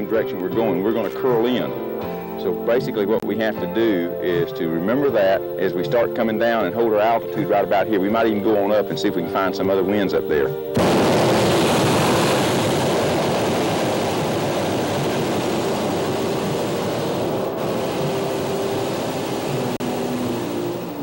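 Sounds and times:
propane burner blast: 0:10.7 - 0:21.0.

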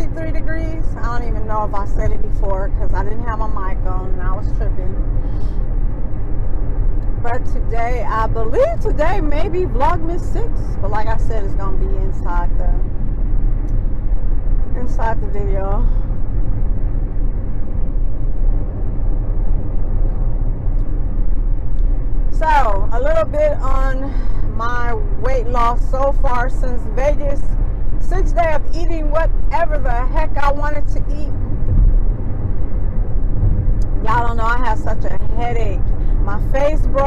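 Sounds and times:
car cabin road and engine rumble: 0:00.0 - 0:37.0.

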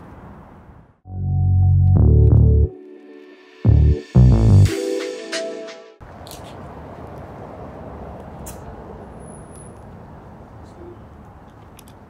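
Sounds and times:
distant city traffic rumble: 0:00.0 - 0:01.0, 0:06.0 - 0:12.0.

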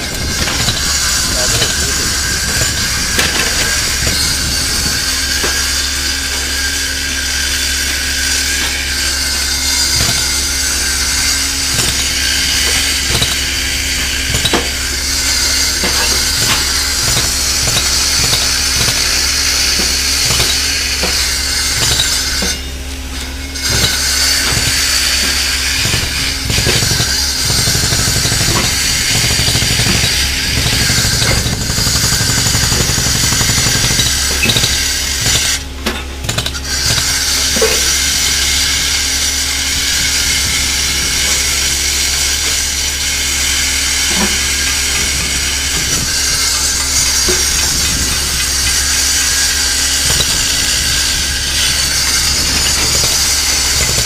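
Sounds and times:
excavator diesel engine: 0:00.0 - 0:54.0.

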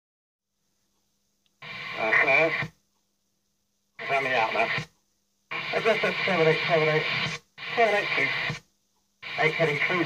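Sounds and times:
radio receiver hiss and hum: 0:01.5 - 0:02.8, 0:04.0 - 0:10.0
burst of radio static: 0:01.6 - 0:02.8, 0:04.0 - 0:04.9, 0:05.5 - 0:10.0
voice over radio: 0:01.6 - 0:02.8, 0:04.0 - 0:04.9, 0:05.5 - 0:08.6, 0:09.2 - 0:10.0.

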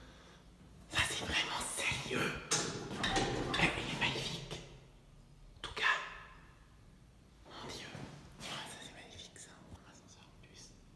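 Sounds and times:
person whispering: 0:00.9 - 0:02.5, 0:03.5 - 0:04.8, 0:05.6 - 0:06.3, 0:07.4 - 0:10.9.

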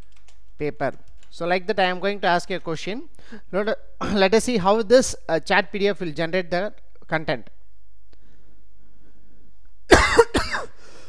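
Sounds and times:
person coughing: 0:09.9 - 0:10.8.

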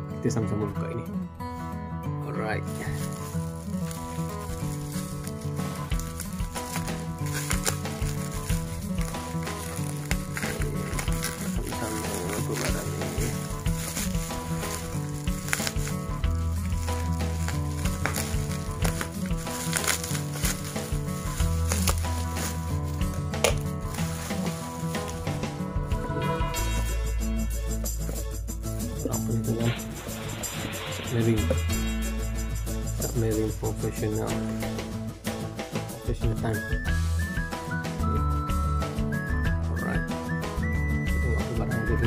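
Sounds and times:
background music: 0:00.0 - 0:42.0
bubble wrap crinkling: 0:02.6 - 0:25.7.

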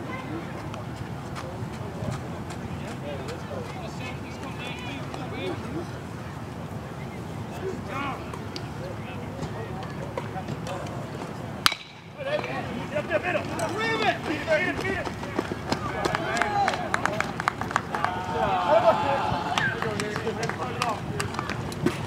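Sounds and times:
metal bat hitting ball: 0:11.6 - 0:12.2
crowd shouting and cheering: 0:13.0 - 0:22.0.

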